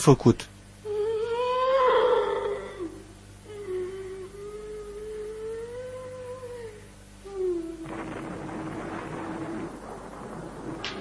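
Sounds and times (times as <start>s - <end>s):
woman wailing: 0.8s - 8.0s.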